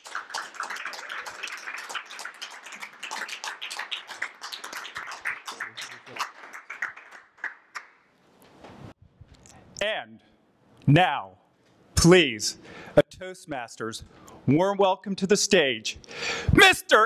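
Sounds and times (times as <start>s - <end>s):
audience clapping: 0.0s - 8.1s.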